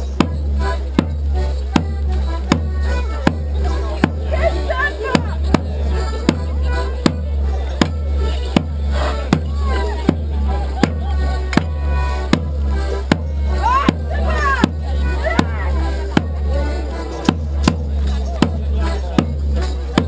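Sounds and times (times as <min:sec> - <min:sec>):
folk dance tune: 0:00.0 - 0:20.0
sharp regular beat: 0:00.0 - 0:20.0.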